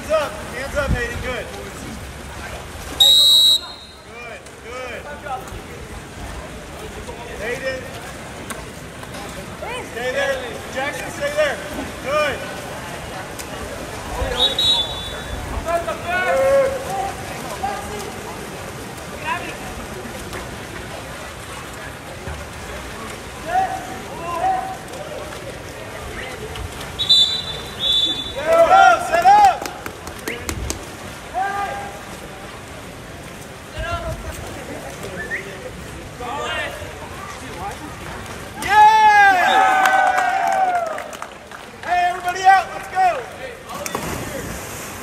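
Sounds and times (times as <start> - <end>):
pool water washing: 0.0 - 45.0
referee whistle blasts: 3.0 - 4.1, 14.3 - 15.4, 27.0 - 28.5.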